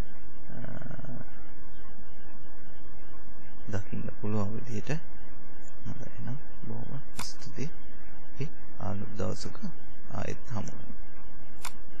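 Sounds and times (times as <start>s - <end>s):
person speaking: 5.8s - 7.7s
computer mouse click: 7.2s - 7.5s, 11.6s - 11.8s.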